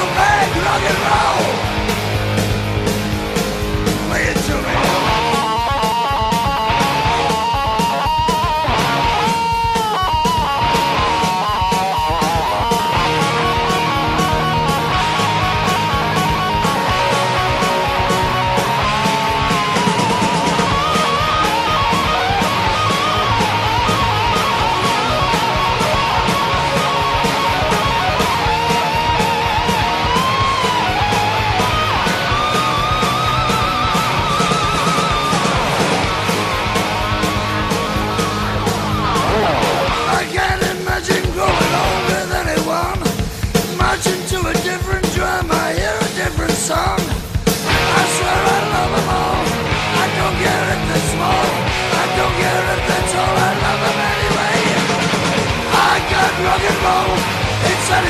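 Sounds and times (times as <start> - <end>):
electric guitar lead melody: 0.0 - 40.3, 47.4 - 58.0
bass: 0.0 - 58.0
drum beat: 0.0 - 58.0.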